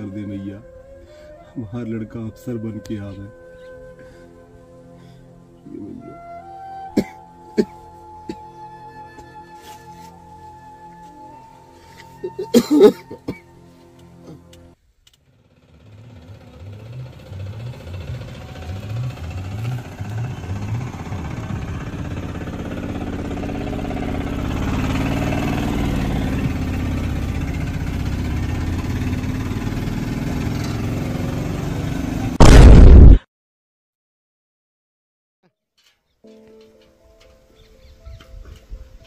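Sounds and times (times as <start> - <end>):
auto-rickshaw engine chugging: 15.2 - 32.4.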